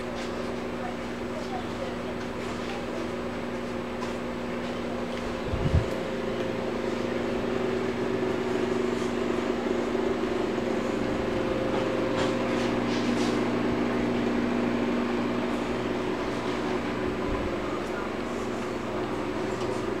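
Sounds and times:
steady mechanical motor hum: 0.0 - 20.0.

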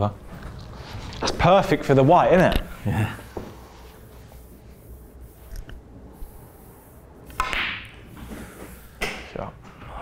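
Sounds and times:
snooker cue striking ball: 7.3 - 8.0.

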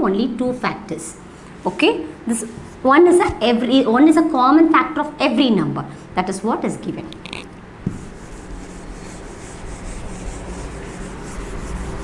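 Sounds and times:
duster rubbing on whiteboard: 7.9 - 12.0.

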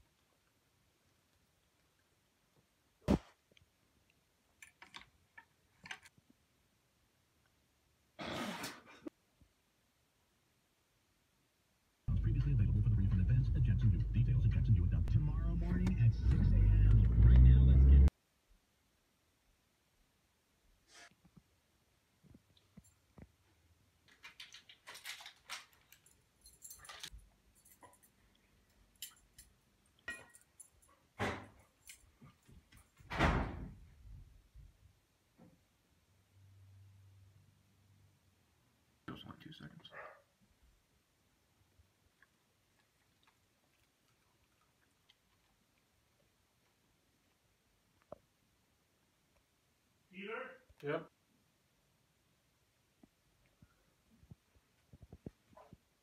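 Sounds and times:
dog collar tags jingling: 24.5 - 31.0, 31.6 - 33.0.

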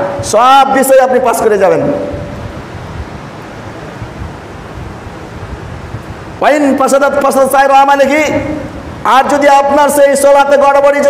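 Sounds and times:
man's voice: 0.0 - 2.2, 6.4 - 11.0
steady hiss: 0.0 - 11.0.

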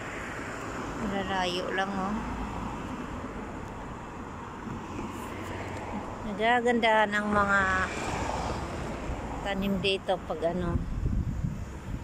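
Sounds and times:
cars driving on road: 0.0 - 12.0.

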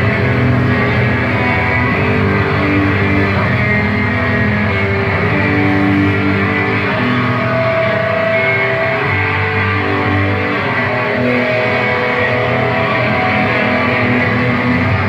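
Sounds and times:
loud live band music: 0.0 - 15.0.

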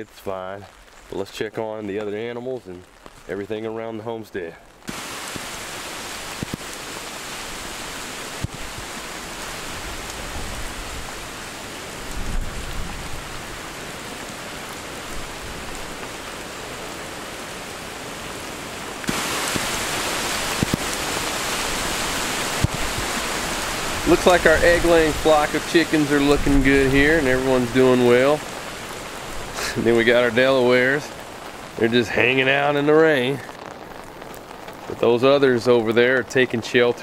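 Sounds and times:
heavy rain falling through trees: 0.0 - 37.0
rain on an umbrella: 0.0 - 37.0
low rumble of wind: 5.4 - 19.0.

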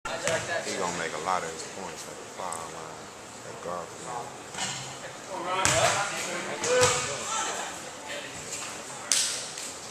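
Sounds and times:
voices echoing in gymnasium: 0.1 - 9.9.

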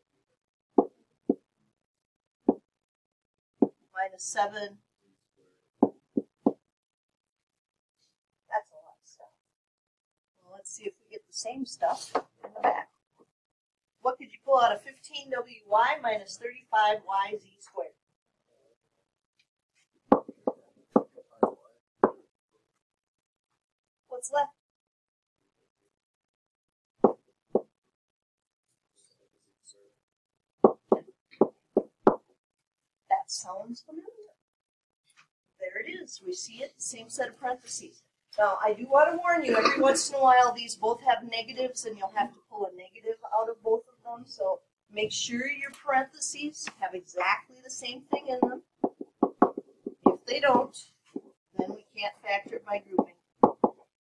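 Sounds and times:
stylus knocking on writing surface: 0.8 - 1.4, 20.1 - 22.2, 30.6 - 32.2, 48.1 - 51.3, 53.0 - 53.9.

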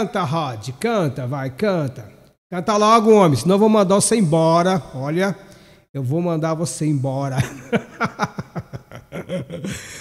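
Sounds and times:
man chuckling: 7.4 - 10.0.

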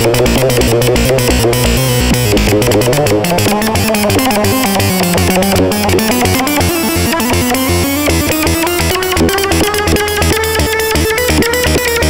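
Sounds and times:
stepping bass line: 0.0 - 12.0.

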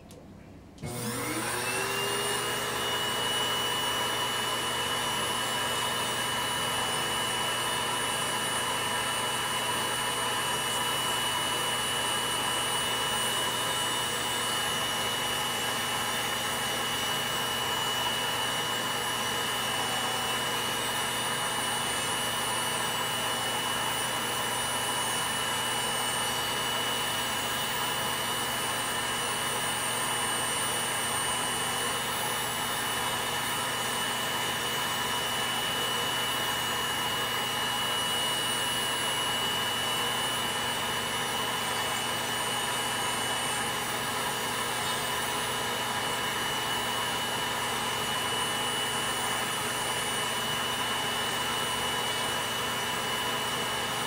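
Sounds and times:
electric nail drill whining: 0.8 - 54.0.

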